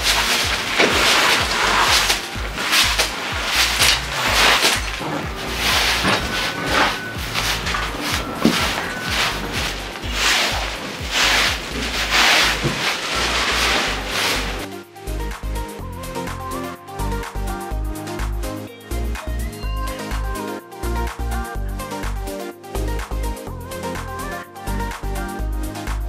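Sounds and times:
broom sweeping floor: 0:00.0 - 0:14.8
background music with low beat: 0:00.0 - 0:26.0.

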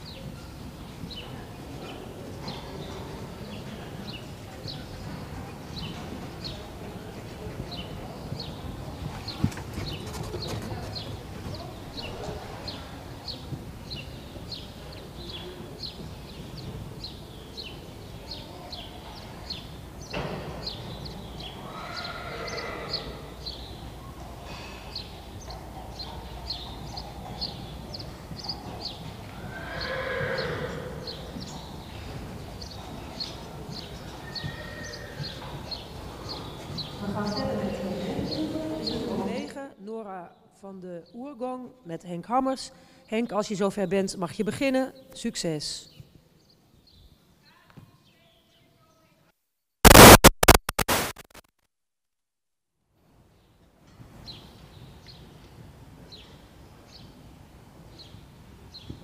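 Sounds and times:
horse whinnying: 0:21.6 - 0:23.3, 0:29.4 - 0:31.3, 0:34.2 - 0:35.4.

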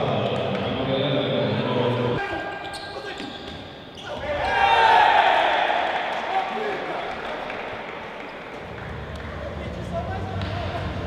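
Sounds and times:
sports hall crowd shouting: 0:04.0 - 0:08.6.

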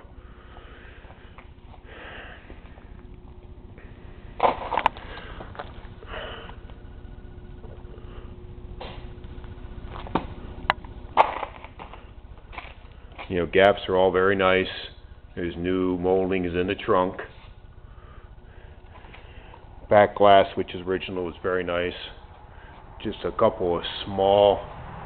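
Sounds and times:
room tone hum: 0:00.0 - 0:25.0.

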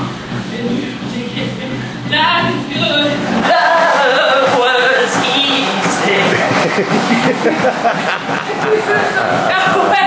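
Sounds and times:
treadmill motor hum: 0:00.0 - 0:10.0.

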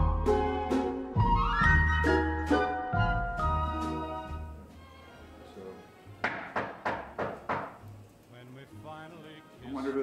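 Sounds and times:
music: 0:00.0 - 0:10.0
knocks on a door: 0:06.2 - 0:07.8.

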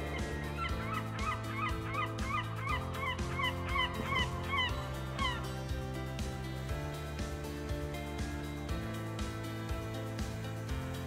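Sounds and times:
bird-like chirping calls: 0:00.0 - 0:05.5
background music with a beat: 0:00.0 - 0:11.0.

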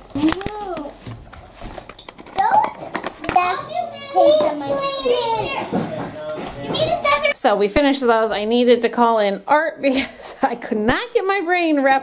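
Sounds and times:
young children chattering: 0:02.4 - 0:07.4.

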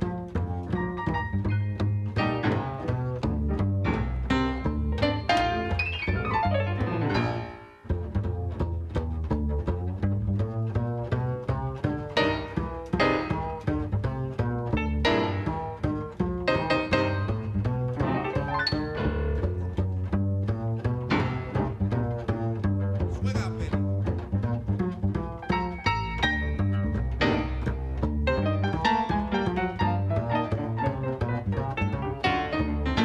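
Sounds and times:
grand piano jazz lines: 0:00.0 - 0:33.0
plucked double bass walking: 0:00.0 - 0:33.0.

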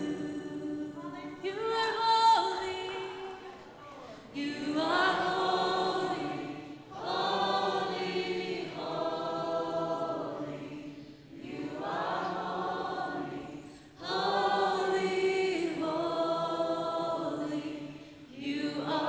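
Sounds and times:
congregation singing slow song: 0:00.0 - 0:19.0.

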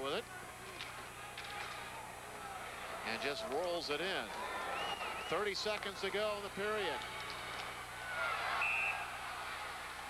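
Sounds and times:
arena crowd noise: 0:00.0 - 0:10.0
referee's whistle blast: 0:08.6 - 0:09.1.

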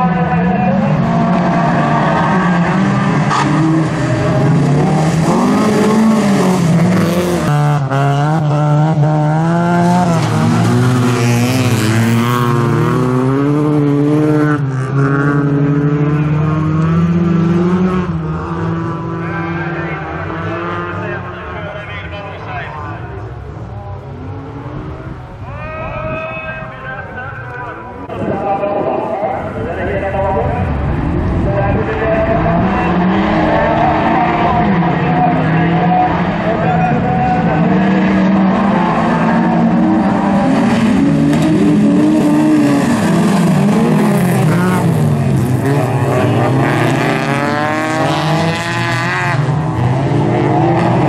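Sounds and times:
race car engines revving: 0:00.0 - 0:51.0.

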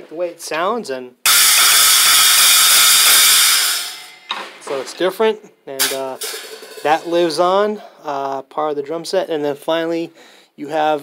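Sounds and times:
cymbal stack struck with drumstick: 0:01.3 - 0:05.0, 0:05.8 - 0:07.1.

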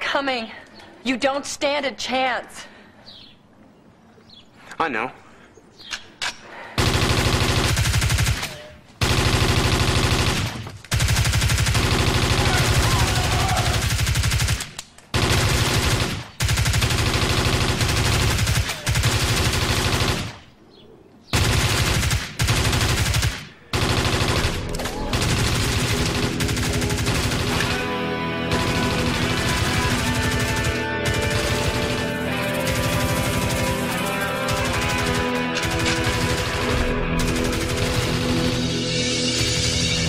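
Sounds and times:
automatic gunfire: 0:06.8 - 0:20.4, 0:21.3 - 0:38.7
film score music: 0:24.0 - 0:40.0.

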